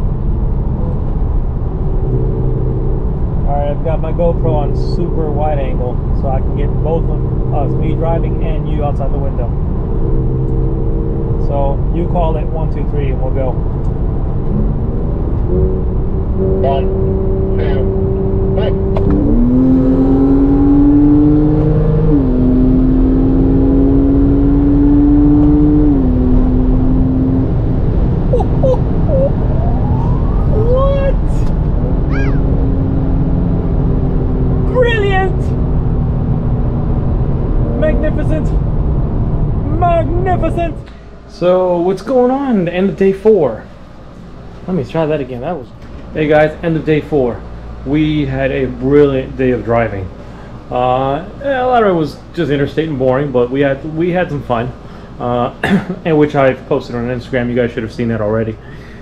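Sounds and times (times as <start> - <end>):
road rumble: 0.0 - 56.0
car engine revving: 14.2 - 34.8.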